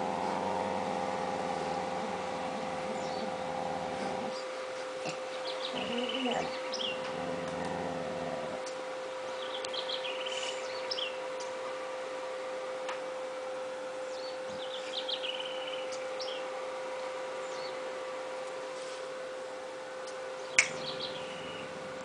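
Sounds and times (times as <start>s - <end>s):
dog growling low: 0.0s - 8.7s, 20.9s - 22.0s
steady hum: 0.0s - 22.0s
bird chirps: 1.5s - 3.5s, 20.6s - 21.7s.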